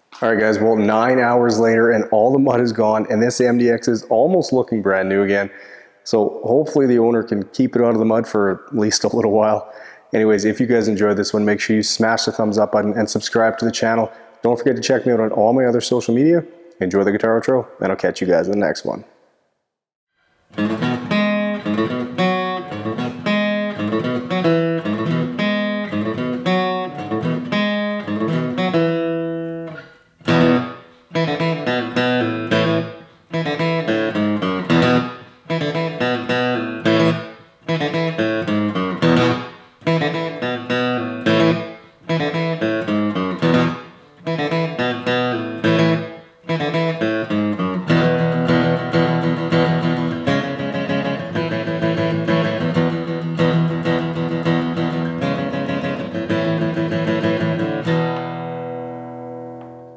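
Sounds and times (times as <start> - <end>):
guitar strumming chords: 0.0 - 2.1, 20.5 - 59.9.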